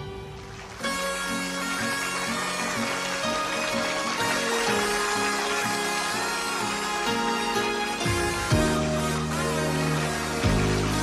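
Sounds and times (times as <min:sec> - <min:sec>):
instrumental pop ballad: 0:06.3 - 0:11.0.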